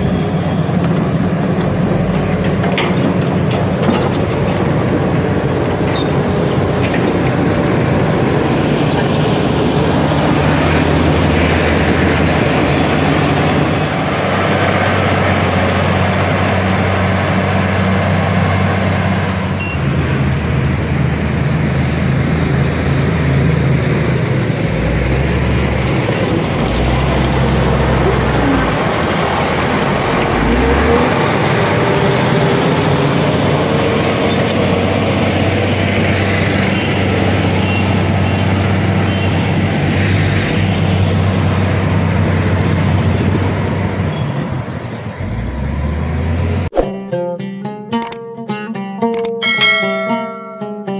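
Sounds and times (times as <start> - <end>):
excavator diesel engine drone: 0.0 - 46.7.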